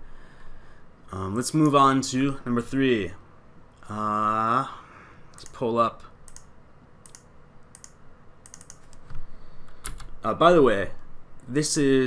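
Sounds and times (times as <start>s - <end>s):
typing on computer keyboard: 8.5s - 9.0s.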